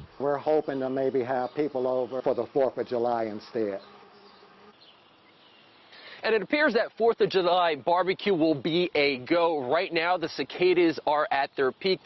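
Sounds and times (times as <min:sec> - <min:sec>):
cicadas buzzing: 0:00.0 - 0:12.0.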